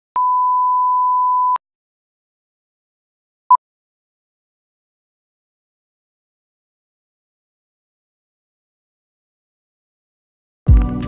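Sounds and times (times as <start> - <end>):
steady pure test tone beep: 0.2 - 1.6.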